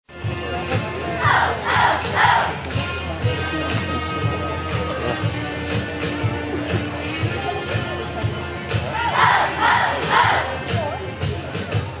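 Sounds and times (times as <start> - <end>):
music with steady beat: 0.1 - 12.0.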